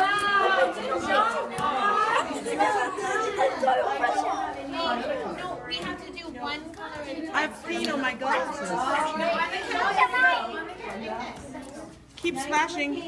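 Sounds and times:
chatter of voices: 0:00.0 - 0:13.0.

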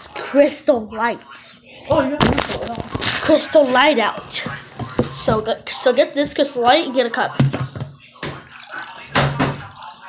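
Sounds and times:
drink pouring into a cup: 0:08.3 - 0:09.2.

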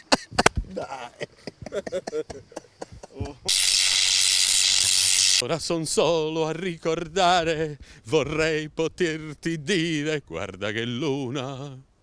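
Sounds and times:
man laughing: 0:00.0 - 0:03.6
hissing static noise: 0:00.0 - 0:05.4.

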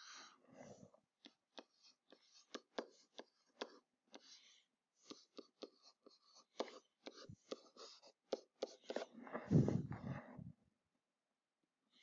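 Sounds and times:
stylus tapping and scratching: 0:01.2 - 0:10.2.

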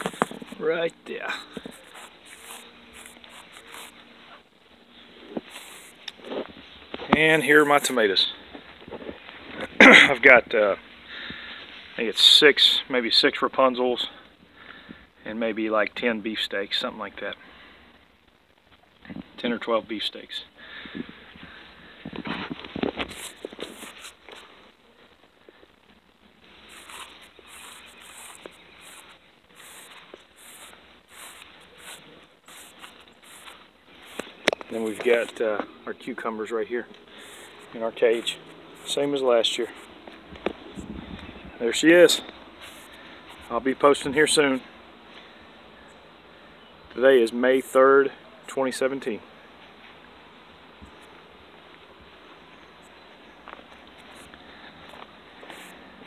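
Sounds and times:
camera handling rustle: 0:00.0 - 0:00.6, 0:01.5 - 0:04.2, 0:05.2 - 0:08.0, 0:22.1 - 0:24.5, 0:26.5 - 0:35.4
soft footsteps: 0:00.0 - 0:00.7, 0:01.5 - 0:09.5, 0:22.0 - 0:35.8.

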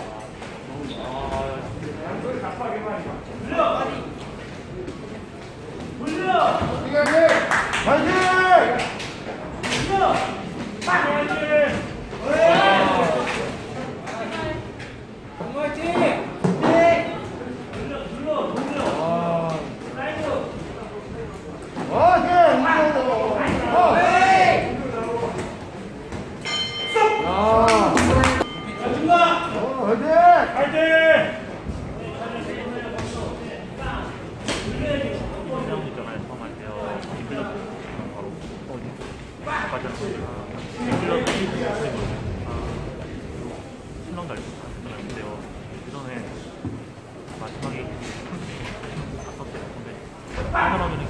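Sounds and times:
crowd voices: 0:00.0 - 0:51.0
boxing ring bell ringing: 0:26.4 - 0:29.7.

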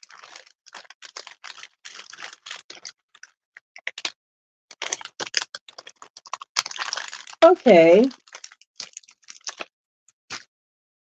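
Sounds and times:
plastic bag crinkling: 0:00.0 - 0:04.1, 0:04.7 - 0:09.7.

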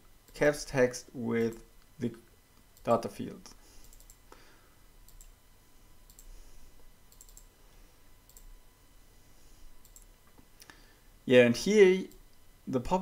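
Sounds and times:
faint steady hum: 0:00.0 - 0:13.0
computer mouse clicks: 0:03.5 - 0:04.2, 0:05.1 - 0:05.4, 0:06.1 - 0:06.3, 0:07.1 - 0:07.5, 0:08.3 - 0:08.5, 0:09.8 - 0:10.7.

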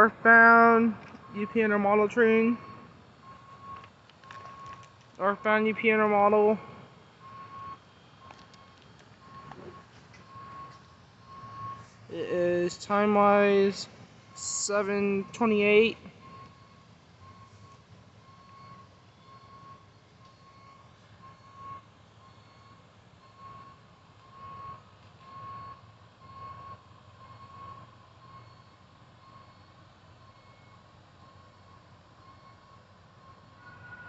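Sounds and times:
crossing warning bell dinging: 0:33.3 - 0:34.0.

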